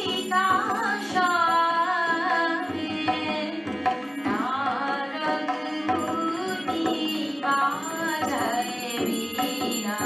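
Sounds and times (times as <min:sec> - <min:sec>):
harmonium drone: 0:00.0 - 0:10.0
woman singing devotional song: 0:00.0 - 0:10.0.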